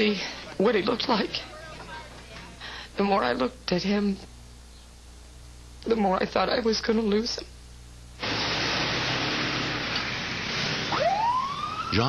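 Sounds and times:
ambulance siren wailing: 0:10.8 - 0:12.0.

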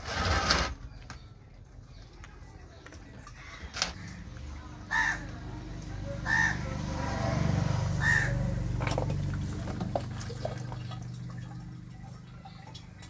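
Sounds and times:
crow cawing: 0:04.9 - 0:05.4, 0:06.2 - 0:07.2, 0:08.0 - 0:08.6
low machine hum: 0:08.3 - 0:13.0.

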